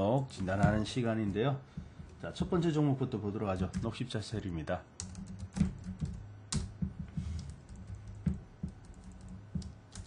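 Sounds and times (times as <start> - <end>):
steady low hum: 0.0 - 10.0
computer keyboard clicking: 5.0 - 10.0.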